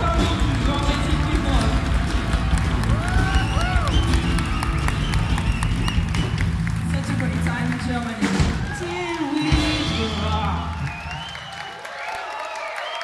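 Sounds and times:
bass guitar: 0.0 - 8.9
drums: 0.0 - 11.7.

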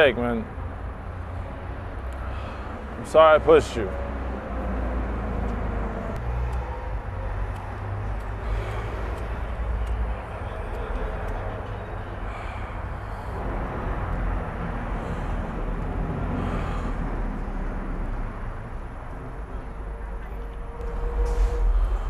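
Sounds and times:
low rumble of distant traffic: 0.0 - 22.0.

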